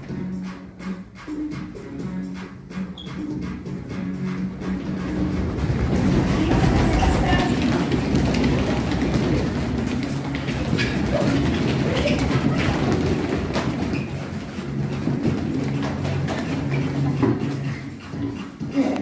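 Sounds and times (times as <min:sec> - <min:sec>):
children stepping on tiled floor: 0:00.0 - 0:19.0
faint dance music: 0:00.0 - 0:19.0.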